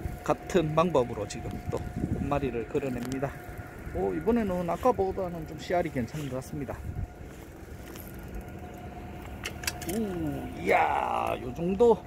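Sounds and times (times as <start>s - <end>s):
boat engine idling: 0.0s - 12.0s
faint steady whine: 0.0s - 12.0s.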